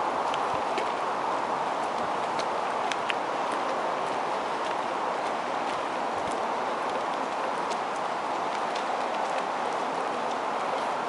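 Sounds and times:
footsteps on paved trail: 0.0s - 11.0s.

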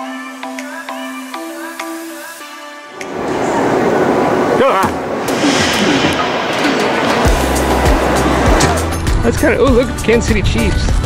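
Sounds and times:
background music: 0.0s - 11.0s
people talking: 3.2s - 8.6s, 9.2s - 11.0s.

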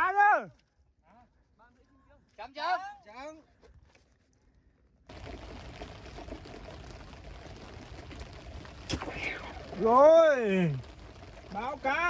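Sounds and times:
rain falling on a lake: 0.0s - 12.0s.

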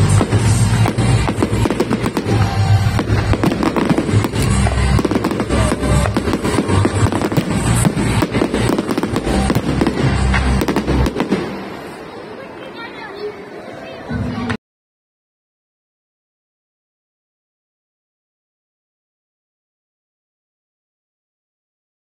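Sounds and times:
fireworks bursting: 0.0s - 12.4s.

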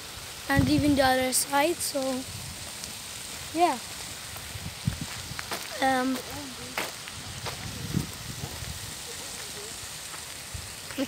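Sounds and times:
wind on microphone: 0.5s - 2.7s, 4.4s - 9.2s.

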